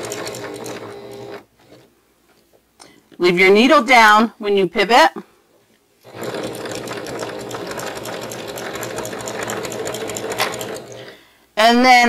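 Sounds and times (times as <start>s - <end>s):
electric sewing machine stitching: 0.0s - 1.9s, 6.0s - 11.1s.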